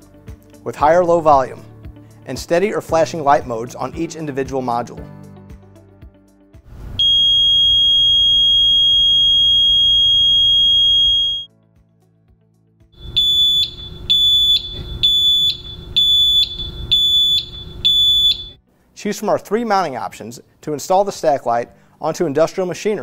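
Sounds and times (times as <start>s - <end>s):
high-pitched alarm buzzer: 7.0s - 11.5s, 13.0s - 18.6s.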